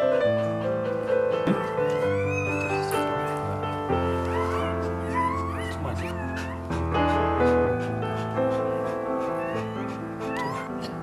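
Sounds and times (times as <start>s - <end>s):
dog whining: 1.5s - 11.0s.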